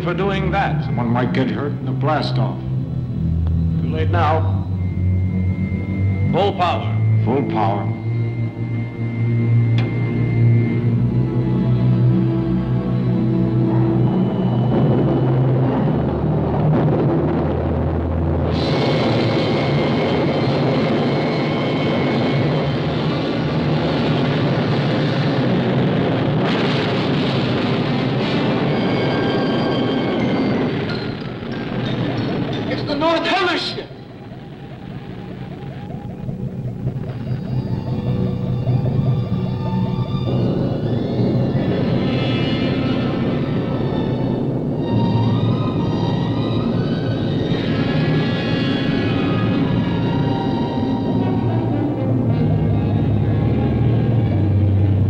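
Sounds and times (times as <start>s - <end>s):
warbling electronic tone: 0.0s - 16.2s, 28.6s - 55.0s
wavering rising tone: 0.0s - 16.3s, 33.8s - 55.0s
dramatic music: 0.0s - 55.0s
rocket exhaust roar: 0.0s - 55.0s.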